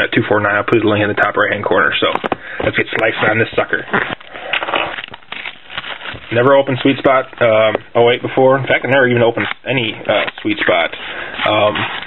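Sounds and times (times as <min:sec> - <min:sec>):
plastic wrapping crackling: 0:01.9 - 0:12.0.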